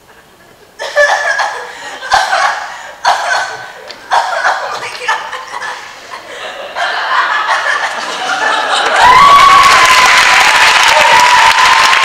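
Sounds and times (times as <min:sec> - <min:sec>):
audience laughing: 0:00.0 - 0:09.2.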